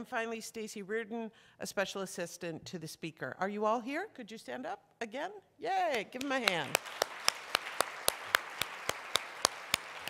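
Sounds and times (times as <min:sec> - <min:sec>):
person clapping close up: 0:06.2 - 0:10.0
audience applause: 0:06.4 - 0:10.0.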